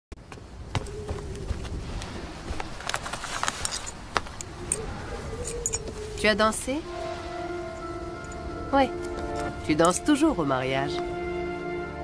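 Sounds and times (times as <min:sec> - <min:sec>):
metallic clinks: 0:03.6 - 0:06.3, 0:07.7 - 0:10.2.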